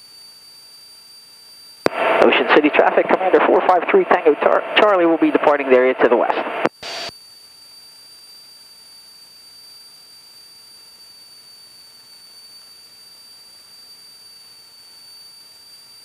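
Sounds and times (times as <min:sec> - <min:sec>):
high-pitched electrical whine: 0:00.0 - 0:16.0.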